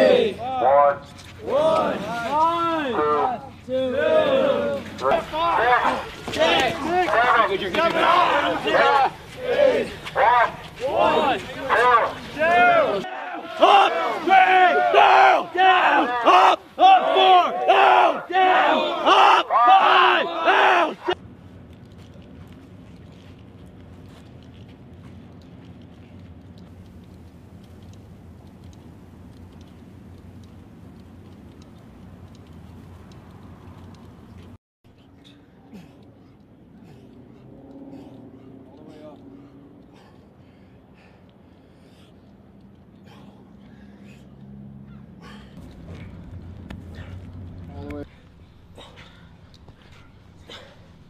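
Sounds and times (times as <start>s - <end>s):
group shouting together: 0.0s - 21.2s.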